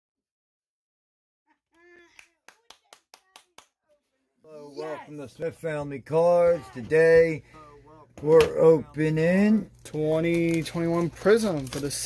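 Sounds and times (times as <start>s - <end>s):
sharp claps or taps: 1.7s - 3.7s.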